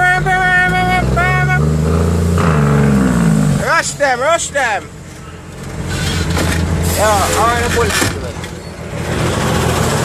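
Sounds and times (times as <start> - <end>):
diesel truck engine drone: 0.0 - 10.0.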